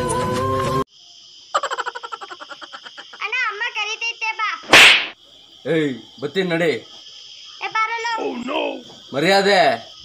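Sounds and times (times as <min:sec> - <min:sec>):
sharp cracking burst: 0:04.6 - 0:05.2.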